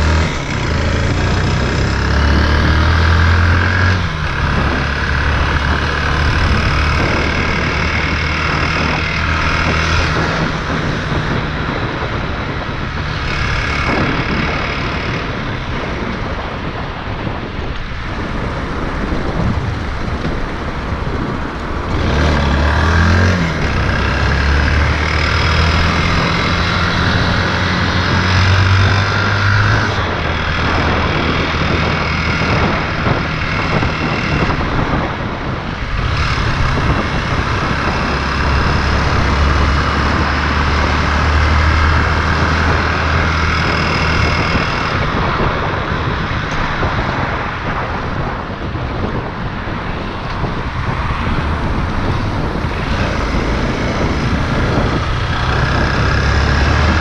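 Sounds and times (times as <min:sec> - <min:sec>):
motorcycle engine: 0:00.0 - 0:57.0
wind rushing over microphone: 0:00.0 - 0:57.0.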